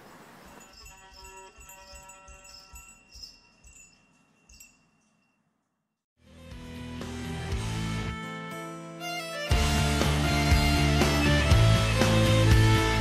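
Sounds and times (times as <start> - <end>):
ankle bells jingling: 0.0 - 5.9.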